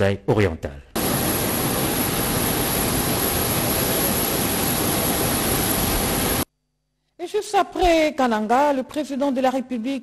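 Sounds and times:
jet aircraft noise: 1.0s - 6.5s.

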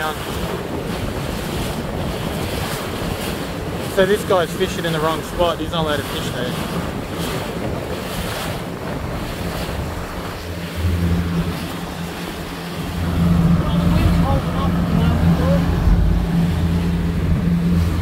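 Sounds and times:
boat engine humming: 0.0s - 18.0s
water splashing against hull: 0.0s - 18.0s
wind on microphone: 0.0s - 18.0s.

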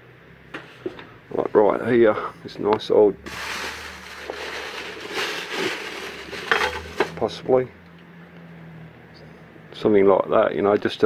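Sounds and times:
handling noise rustling: 3.3s - 7.4s
glass jars clinking: 6.2s - 7.2s.

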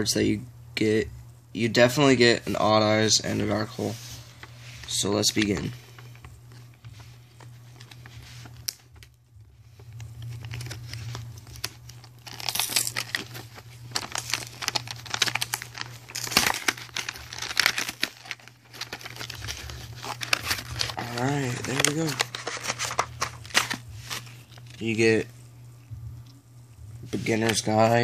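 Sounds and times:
steady low hum: 0.0s - 28.0s
plastic wrapping tearing and crinkling: 9.8s - 24.8s.

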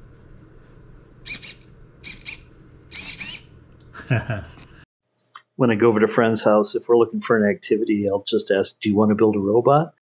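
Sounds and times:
servos whirring: 1.2s - 3.5s.

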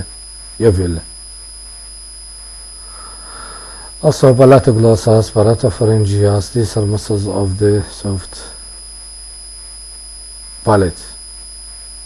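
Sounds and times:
high-pitched whine: 0.0s - 12.0s
recording hiss and hum: 0.0s - 12.0s
person breathing in: 2.8s - 4.0s.

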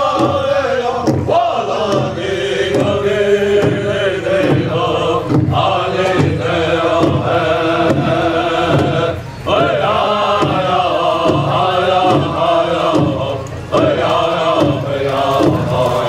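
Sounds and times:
large drum struck with sticks: 0.0s - 16.0s
voices chanting in unison: 0.0s - 16.0s.

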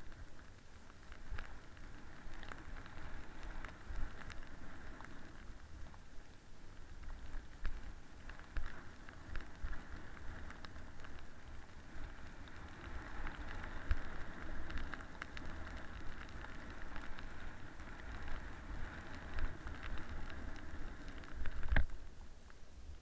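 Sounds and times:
snowboard scraping over snow: 0.0s - 22.0s
small clicks and knocks: 12.0s - 22.6s.

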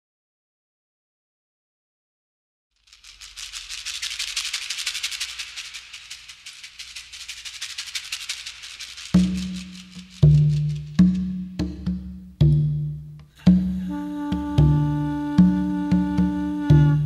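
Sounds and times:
fast shaker rhythm: 2.8s - 17.0s.

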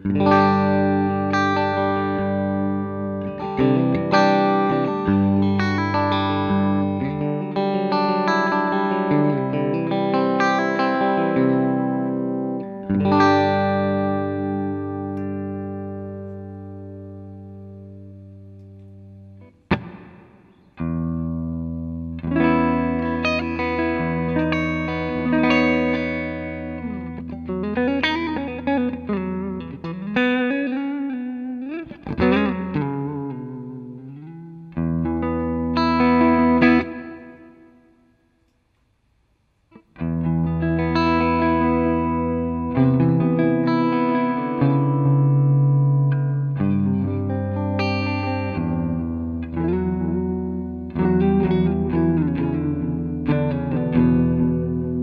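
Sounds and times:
electric guitar chords: 0.0s - 38.6s, 39.7s - 55.0s.

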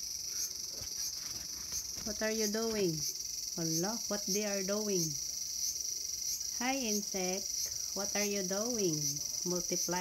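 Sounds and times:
cicadas buzzing: 0.0s - 10.0s.

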